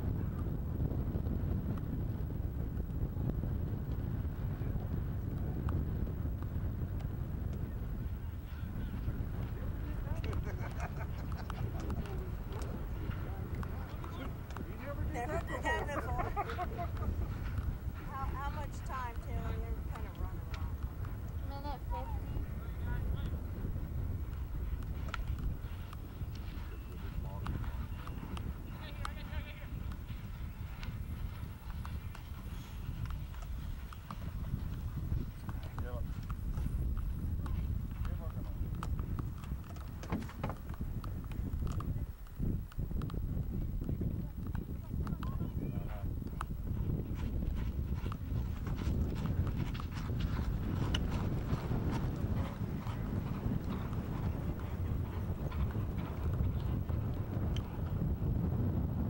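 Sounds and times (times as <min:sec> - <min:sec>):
hoofbeats galloping on grass: 0:00.0 - 0:59.0
low rumble: 0:00.0 - 0:59.0.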